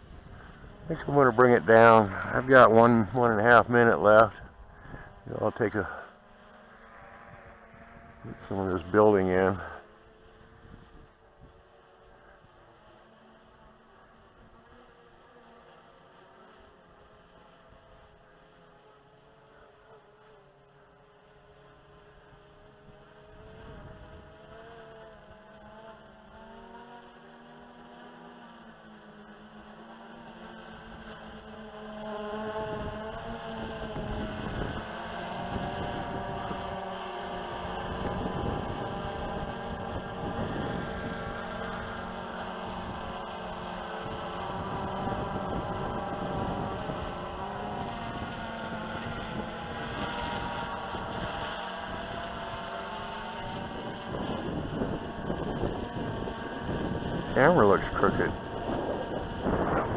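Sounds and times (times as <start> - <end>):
drone propellers buzzing: 0.0 - 59.9.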